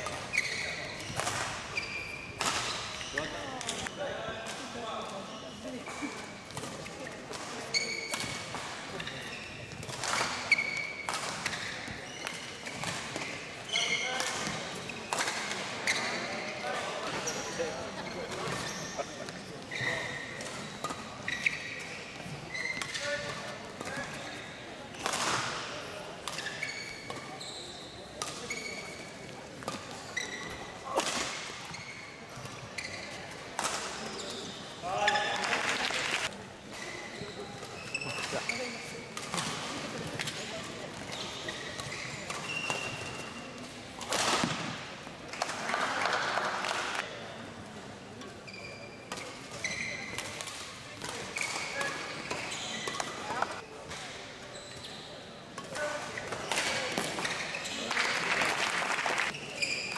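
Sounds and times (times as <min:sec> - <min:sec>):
shoes squeaking on court: 0:00.0 - 0:04.2, 0:04.9 - 0:47.3, 0:48.3 - 0:58.4, 0:59.2 - 0:59.9.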